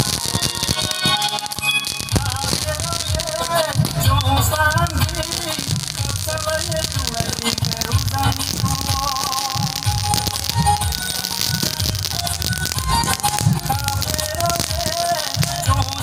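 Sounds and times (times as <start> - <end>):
fireworks crackling: 0.0 - 16.0
music over pulsing beat: 0.0 - 16.0.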